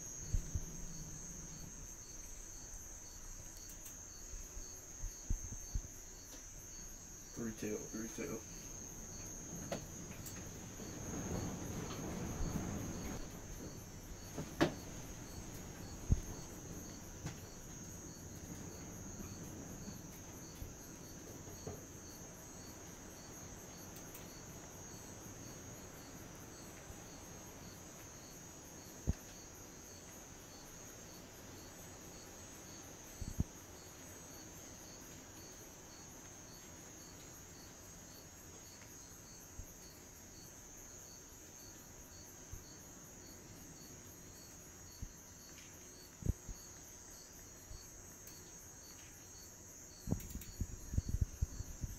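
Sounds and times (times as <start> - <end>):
soft knocks: 13.6 - 15.0.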